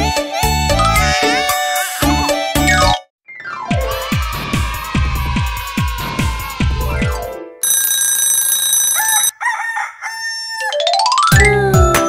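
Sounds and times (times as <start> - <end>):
steady ringing tone: 7.6 - 9.3
rooster crowing: 8.8 - 10.8.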